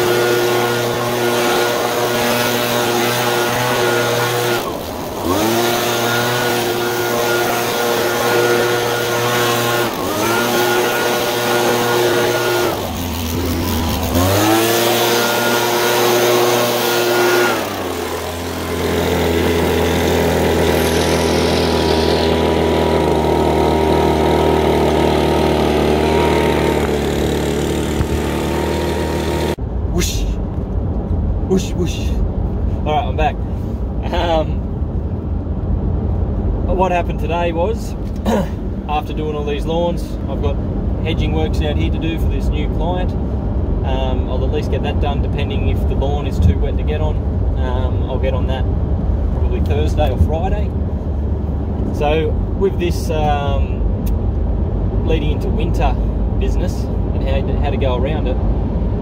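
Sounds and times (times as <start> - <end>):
leaf blower running: 0.0 - 29.6.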